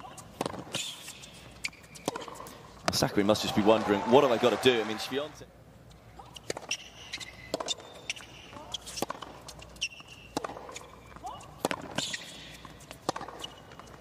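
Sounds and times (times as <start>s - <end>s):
shoes squeaking on court: 0.0s - 4.2s, 5.8s - 14.0s
tennis ball struck with rackets: 0.3s - 0.9s, 2.0s - 3.0s, 7.5s - 7.8s, 10.3s - 12.3s, 13.0s - 13.6s.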